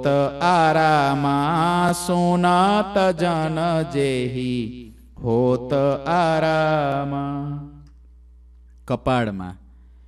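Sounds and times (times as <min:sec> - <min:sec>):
man singing unaccompanied: 0:00.0 - 0:07.9.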